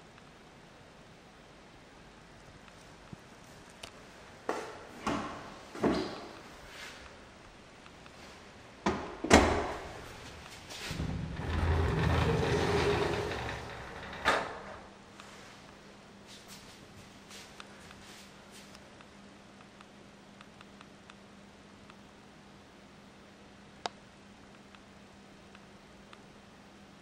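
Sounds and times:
sliding door rolling along track: 0:09.9 - 0:14.9.

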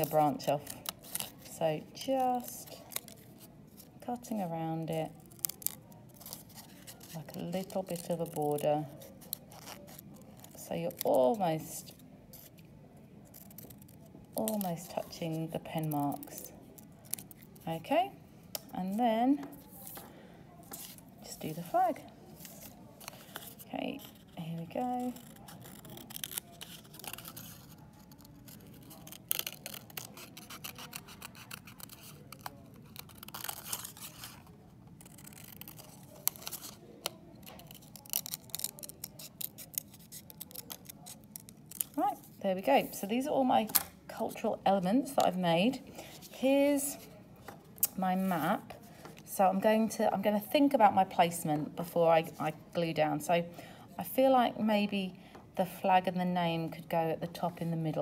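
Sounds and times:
scissors cutting paper: 0:00.0 - 0:04.0, 0:04.9 - 0:12.6, 0:13.2 - 0:17.7, 0:20.7 - 0:42.4.

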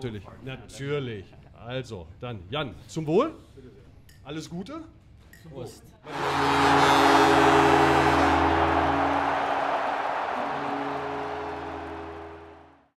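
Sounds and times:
held music chord: 0:06.1 - 0:12.9.

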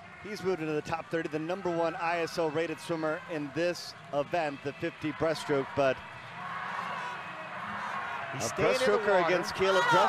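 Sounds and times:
indoor swimming pool background noise: 0:00.0 - 0:10.0.

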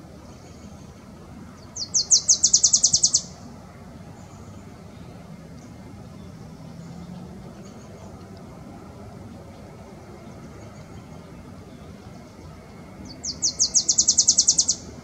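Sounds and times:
distant traffic rumble: 0:00.0 - 0:15.0
faint bird chirps: 0:01.7 - 0:03.3, 0:13.1 - 0:14.9.

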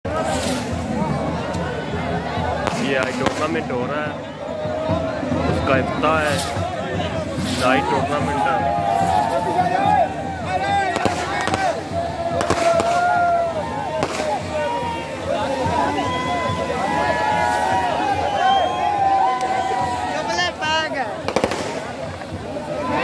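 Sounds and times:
crowd voices: 0:00.0 - 0:23.0
fireworks spraying sparks: 0:00.1 - 0:01.6, 0:02.6 - 0:04.0, 0:06.0 - 0:23.0
sharp firework cracks: 0:02.6 - 0:03.9, 0:06.2 - 0:06.6, 0:10.8 - 0:15.0, 0:21.2 - 0:22.4.

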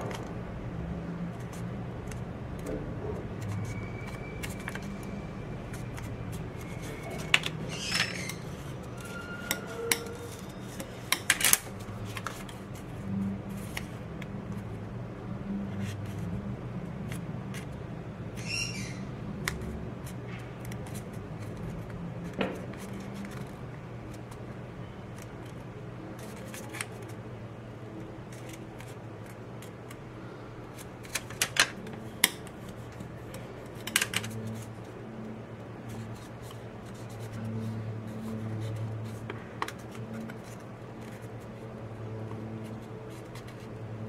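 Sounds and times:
paper being folded and creased: 0:01.3 - 0:05.1, 0:05.7 - 0:14.7, 0:19.4 - 0:24.4, 0:25.1 - 0:27.2, 0:28.2 - 0:30.0, 0:35.8 - 0:43.9.

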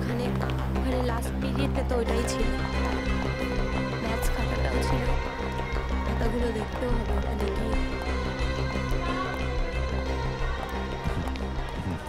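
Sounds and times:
drama music with drone and melody: 0:00.0 - 0:12.0.

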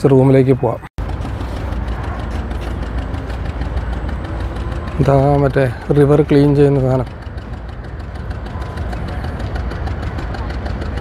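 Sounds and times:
steady low rumble with hum: 0:01.0 - 0:11.0.

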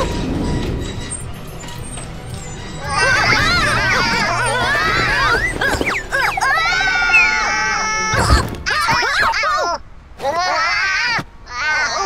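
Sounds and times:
crane engine rumbling: 0:00.0 - 0:08.7.

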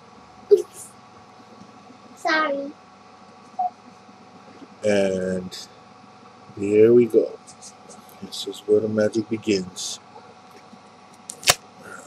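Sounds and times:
faint steady hum: 0:00.0 - 0:12.0
man speaking: 0:04.8 - 0:05.7, 0:06.6 - 0:10.0.

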